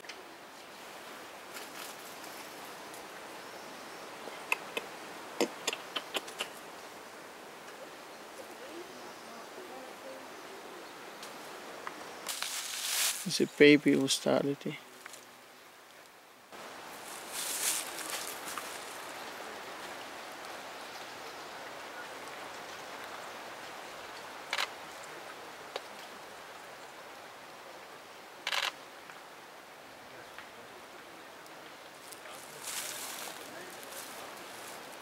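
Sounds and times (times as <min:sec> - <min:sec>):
outdoor background hiss: 0:00.0 - 0:35.0.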